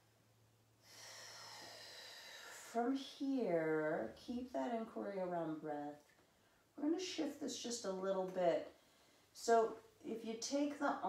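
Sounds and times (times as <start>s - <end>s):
person breathing: 0.8s - 2.6s, 8.8s - 9.4s.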